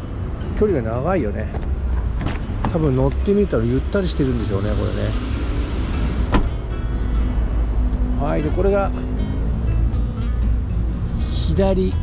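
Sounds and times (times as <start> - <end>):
background music: 0.0 - 12.0
car door shutting: 1.6 - 2.8, 6.2 - 6.6.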